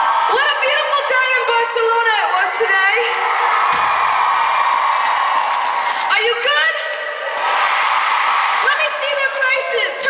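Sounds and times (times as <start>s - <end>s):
concert crowd cheering: 0.0s - 10.0s.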